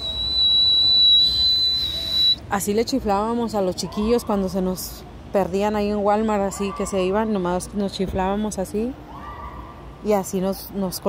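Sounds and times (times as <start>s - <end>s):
person whistling high note: 0.0s - 2.4s.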